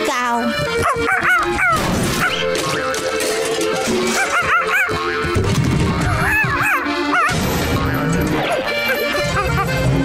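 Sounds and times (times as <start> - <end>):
cartoon background music: 0.0 - 10.0
high yapping cartoon barks: 0.8 - 2.6, 4.0 - 5.4, 6.1 - 7.4.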